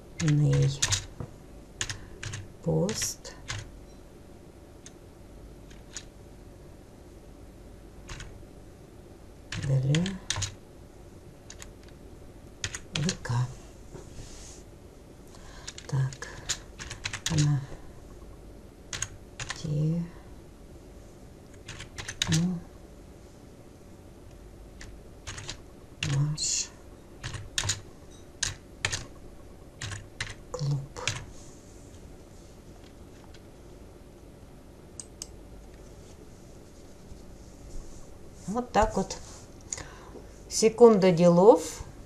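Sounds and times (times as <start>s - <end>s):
computer keyboard keystrokes: 0.2s - 1.1s, 1.8s - 3.7s, 5.7s - 6.1s, 8.1s - 8.3s, 9.5s - 10.6s, 11.5s - 12.0s, 12.6s - 13.2s, 15.6s - 17.6s, 18.9s - 19.6s, 21.5s - 22.5s, 24.8s - 26.2s, 27.2s - 27.8s, 28.4s - 29.1s, 29.8s - 30.4s, 31.0s - 31.3s.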